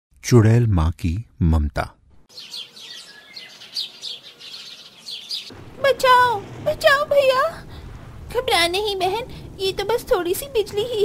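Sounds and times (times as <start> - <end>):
small birds chirping: 2.3 - 6.9
low rumbling noise: 5.5 - 11.0.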